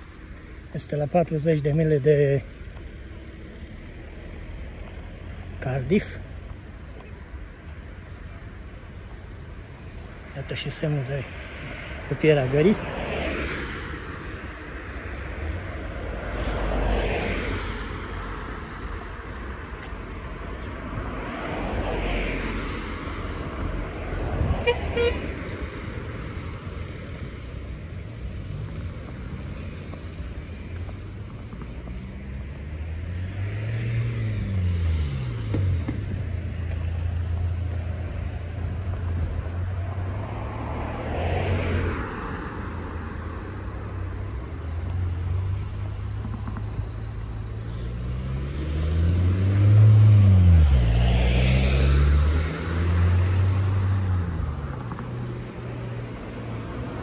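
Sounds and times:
cars passing by: 0:00.0 - 0:57.0
car horn toot: 0:24.6 - 0:25.4.

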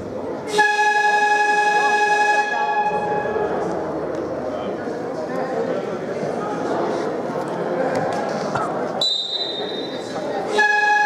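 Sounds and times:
scoreboard buzzer horn: 0:00.5 - 0:03.2, 0:10.6 - 0:11.0.

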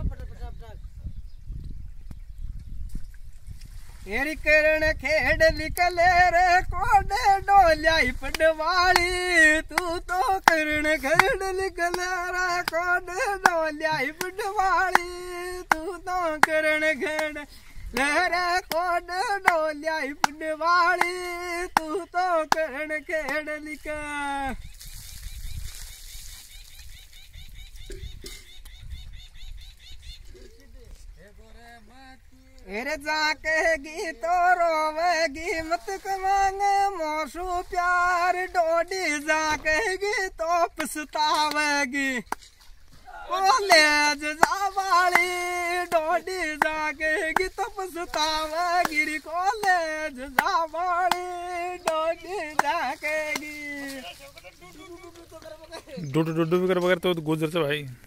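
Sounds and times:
wind buffeting microphone: 0:00.0 - 0:41.2
man singing: 0:04.0 - 0:24.6, 0:30.4 - 0:42.4, 0:43.0 - 0:56.8
sharp hand claps: 0:14.2 - 0:17.4, 0:40.8 - 0:41.7, 0:44.4 - 0:46.0, 0:50.4 - 0:53.6.

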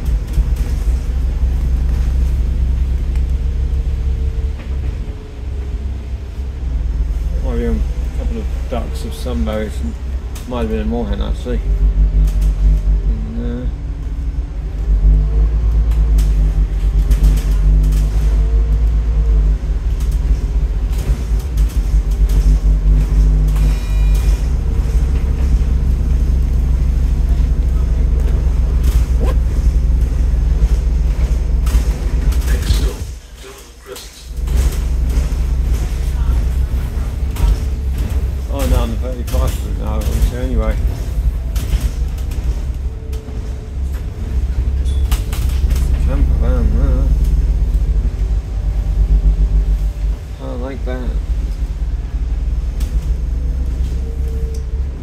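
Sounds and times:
bus diesel engine rumbling: 0:00.0 - 0:55.0.

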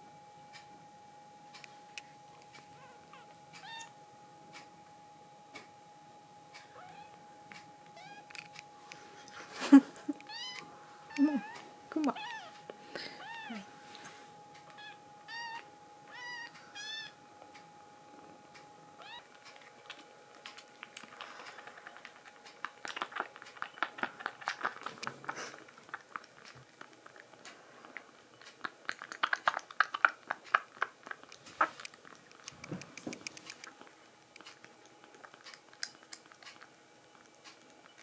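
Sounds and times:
kittens mewing: 0:10.2 - 0:13.7.

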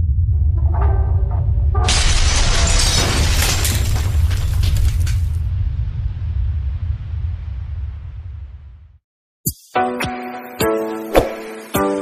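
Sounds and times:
deep steady rumble: 0:00.0 - 0:01.9, 0:05.1 - 0:09.0
crash of shattering stone: 0:01.9 - 0:05.5.

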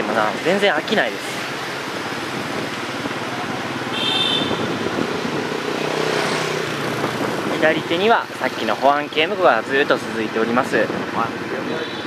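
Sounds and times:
traffic hum: 0:00.0 - 0:12.0
wind and road noise: 0:00.0 - 0:12.0
motorbike running: 0:00.3 - 0:09.3.

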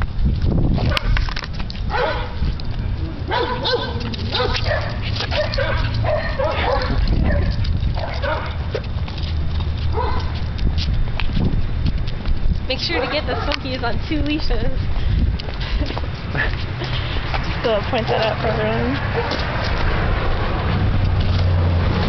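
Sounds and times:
steady low rumble: 0:00.0 - 0:22.0
dogs barking: 0:01.9 - 0:02.5, 0:03.2 - 0:08.9, 0:09.9 - 0:10.5, 0:12.8 - 0:13.7, 0:19.0 - 0:19.6.

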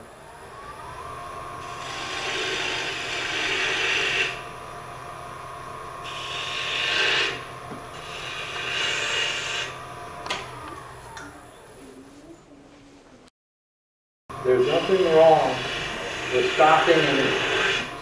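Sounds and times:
lathe humming: 0:00.0 - 0:11.8, 0:14.3 - 0:18.0
gouge scraping wood on lathe: 0:01.6 - 0:04.5, 0:06.0 - 0:09.8, 0:14.5 - 0:18.0.

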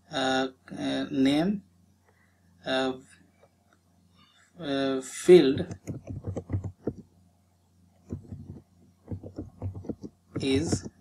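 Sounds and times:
keyboard keystrokes: 0:05.6 - 0:07.0, 0:08.1 - 0:11.0.

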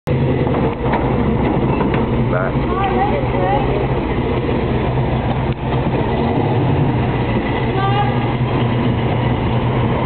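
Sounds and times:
car engine deep rumble: 0:00.1 - 0:10.0.

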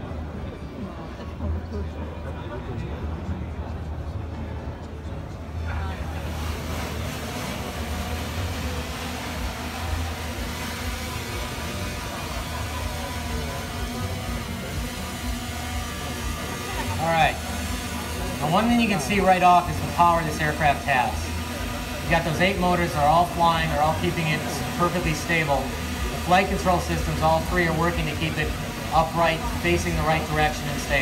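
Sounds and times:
drone rotors whirring: 0:05.3 - 0:31.0.

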